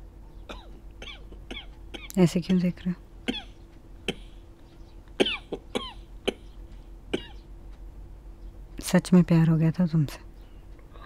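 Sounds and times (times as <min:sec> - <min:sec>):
person coughing: 0:04.1 - 0:04.4, 0:05.2 - 0:06.5, 0:07.2 - 0:07.4.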